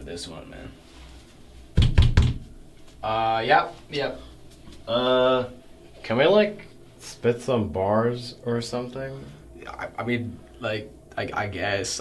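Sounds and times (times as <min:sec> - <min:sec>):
heavy knocks: 0:01.8 - 0:02.5.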